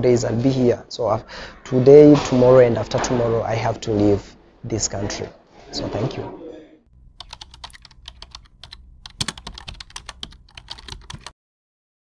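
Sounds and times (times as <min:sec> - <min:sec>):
keyboard keys clacking: 0:07.0 - 0:11.3.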